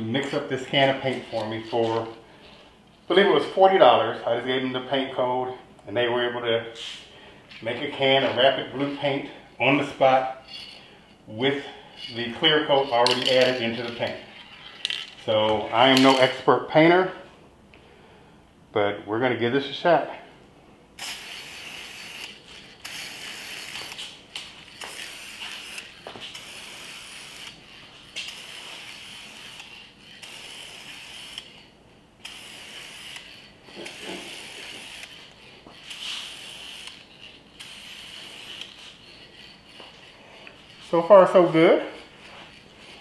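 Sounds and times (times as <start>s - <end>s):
spray paint can hissing: 21.0s - 43.0s.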